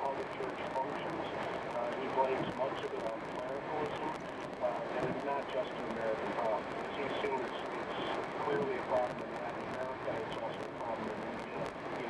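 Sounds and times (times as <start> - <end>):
road noise inside car: 0.0 - 12.0
talk radio voice: 0.0 - 12.0.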